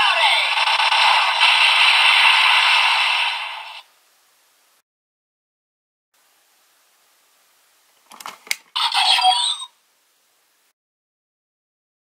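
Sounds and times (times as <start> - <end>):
toy speaker noisy rush: 0.0 - 3.9, 8.8 - 9.7.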